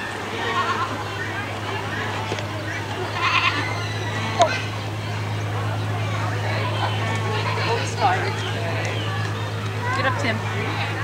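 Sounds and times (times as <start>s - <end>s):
steady low hum: 0.0s - 11.0s
goat bleating: 0.4s - 1.0s, 3.0s - 4.7s.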